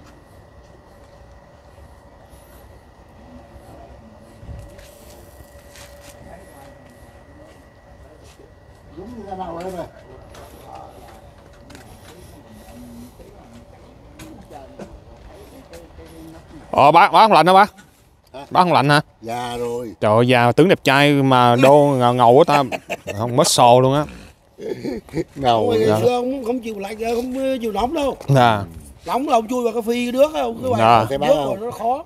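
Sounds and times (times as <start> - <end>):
faint steady hum: 0.0 - 32.0
person's voice: 25.4 - 26.2, 30.6 - 31.7.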